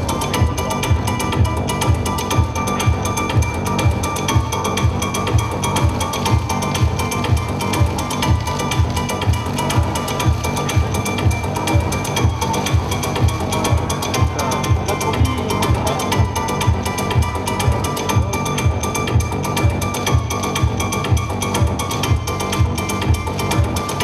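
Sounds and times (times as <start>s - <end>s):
electronic music: 0.0s - 24.0s
kick drum: 0.0s - 24.0s.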